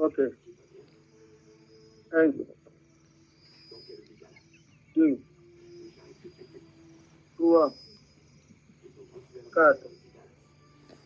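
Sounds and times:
faint high-pitched tone: 0:00.0 - 0:11.0
man speaking: 0:05.0 - 0:05.3, 0:07.4 - 0:07.8, 0:08.9 - 0:10.4.

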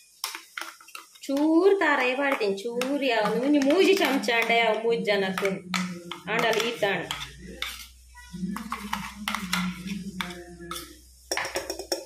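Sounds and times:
spoon scraping steel jar: 0:05.4 - 0:12.0.

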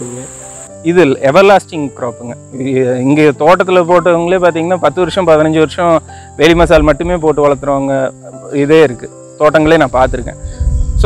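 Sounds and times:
crickets trilling: 0:00.0 - 0:11.0
speech: 0:00.9 - 0:10.4.

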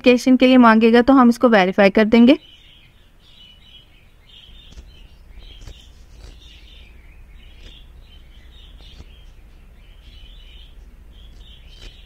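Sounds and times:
low steady hum: 0:00.0 - 0:12.0
small birds chirping: 0:00.0 - 0:12.0.

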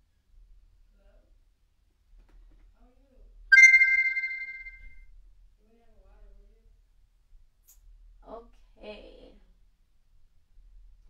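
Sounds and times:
phone electronic chime: 0:03.5 - 0:04.8.

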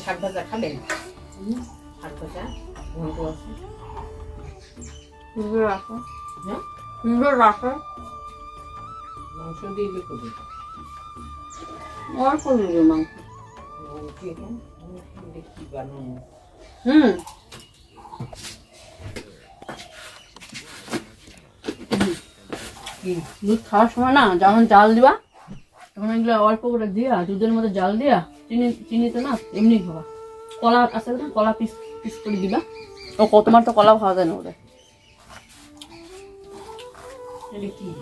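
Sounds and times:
faint background melody: 0:00.0 - 0:38.0.

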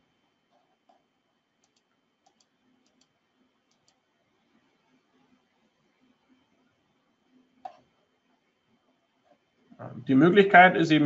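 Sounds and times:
person speaking: 0:09.8 - 0:11.0.

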